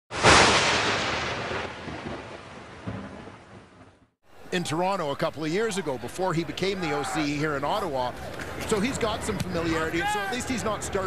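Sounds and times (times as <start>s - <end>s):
thunderclap rumbling: 0.1s - 4.1s.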